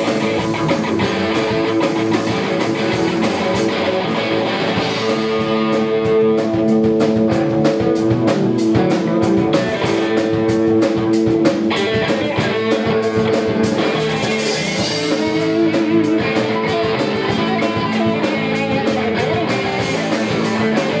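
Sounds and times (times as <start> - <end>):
bass guitar: 0.0 - 21.0
drum beat: 0.0 - 21.0
electric guitars: 0.0 - 21.0.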